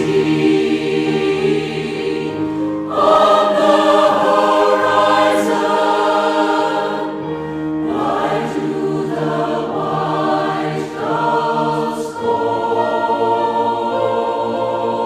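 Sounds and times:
mixed choir singing: 0.0s - 15.0s.

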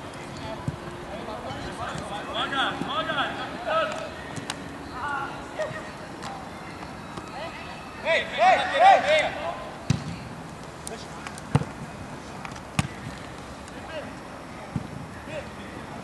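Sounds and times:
players shouting calls: 0.6s - 10.3s
football being kicked: 9.9s - 10.2s, 12.8s - 13.2s.

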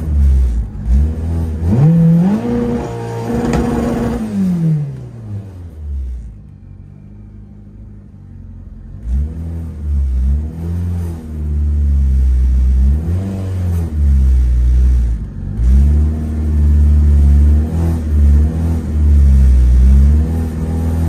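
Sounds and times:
car engine revving: 0.0s - 6.3s, 8.9s - 21.0s.

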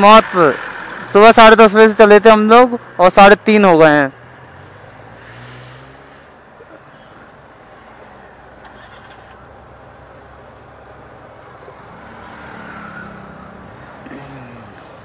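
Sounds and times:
road noise: 0.0s - 15.0s
motorcycle engine hum: 1.8s - 15.0s
short hiss: 5.2s - 6.4s.

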